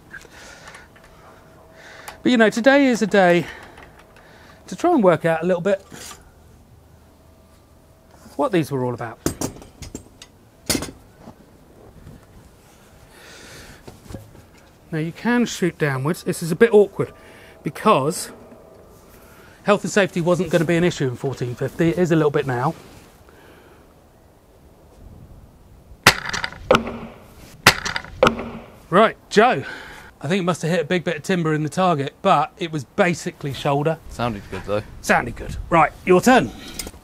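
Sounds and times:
soft scraping rustle: 0:18.2 - 0:23.3
bolt striking wooden target: 0:26.1 - 0:28.8
crossbow knock: 0:26.1 - 0:28.8.

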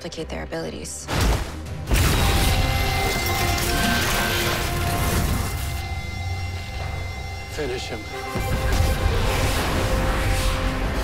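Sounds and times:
dramatic film score: 0:00.0 - 0:11.0.

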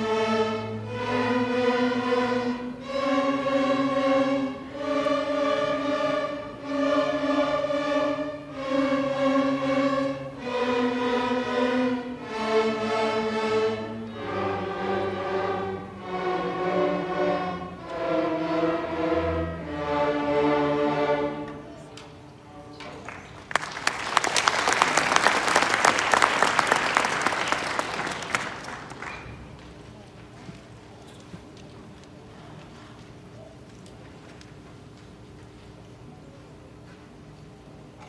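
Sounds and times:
string orchestra sustained chords: 0:00.0 - 0:22.1.

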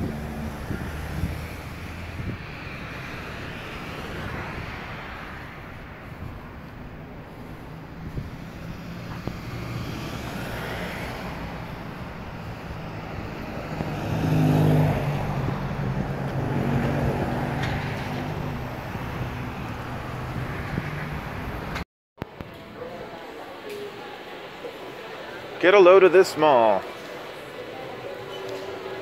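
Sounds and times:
car driving close by: 0:00.0 - 0:21.8
road traffic passing: 0:00.0 - 0:29.0.

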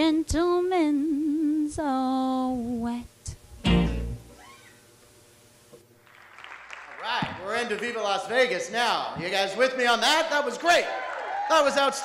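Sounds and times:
acoustic guitar strummed chord: 0:03.6 - 0:04.3.

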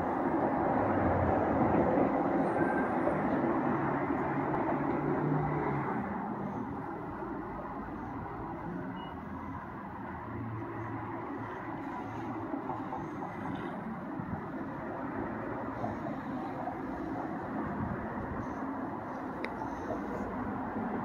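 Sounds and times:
road traffic rumble: 0:00.0 - 0:21.0.

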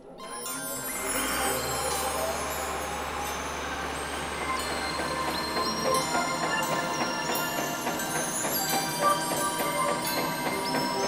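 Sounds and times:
machinery rumbling and humming: 0:00.0 - 0:11.0.

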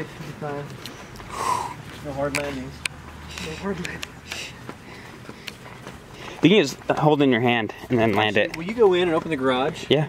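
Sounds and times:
footsteps on concrete: 0:00.0 - 0:10.0
breathy sniffing noises: 0:00.2 - 0:01.9, 0:03.2 - 0:06.5.

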